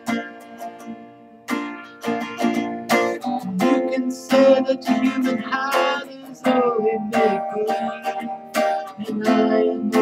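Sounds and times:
guitar strumming chords: 0:00.0 - 0:10.0.

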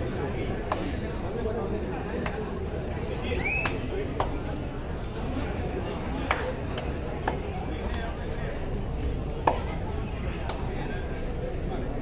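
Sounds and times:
crowd murmur: 0:00.0 - 0:12.0
sharp slaps: 0:00.6 - 0:01.0, 0:06.2 - 0:08.0, 0:09.4 - 0:09.8.

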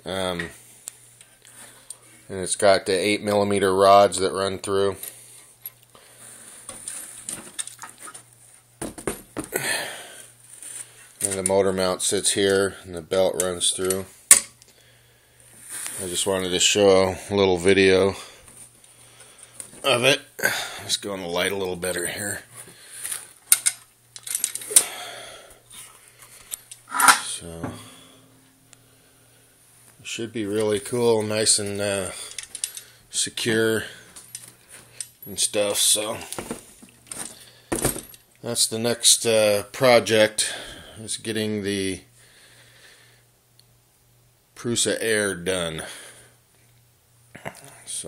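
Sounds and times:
low steady hum: 0:00.0 - 0:48.0
clicks and rattles of metal parts: 0:06.8 - 0:08.2, 0:23.5 - 0:24.9, 0:32.3 - 0:32.9.

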